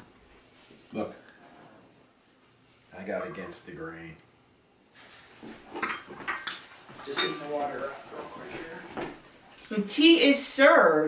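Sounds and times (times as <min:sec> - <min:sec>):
porcelain teacups clinking: 0:05.7 - 0:07.6.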